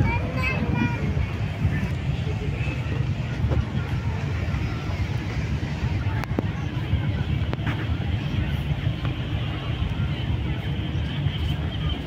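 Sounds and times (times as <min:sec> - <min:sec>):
faint voices: 0:00.0 - 0:12.0
low uneven rumble: 0:00.0 - 0:12.0.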